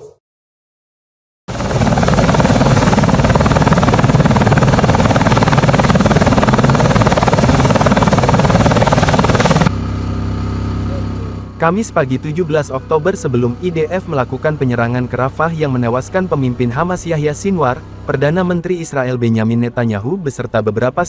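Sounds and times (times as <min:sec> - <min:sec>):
helicopter rotor and turbine noise: 0:01.5 - 0:19.4
steady engine hum: 0:01.5 - 0:21.0.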